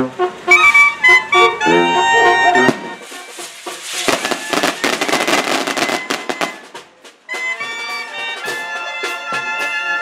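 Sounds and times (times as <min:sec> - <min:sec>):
firecrackers popping: 0:02.7 - 0:07.2.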